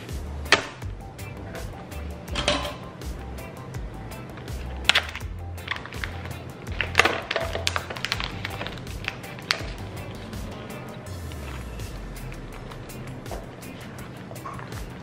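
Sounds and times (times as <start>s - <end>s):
background music: 0.0s - 15.0s
plastic film crinkling and tearing: 4.6s - 10.6s.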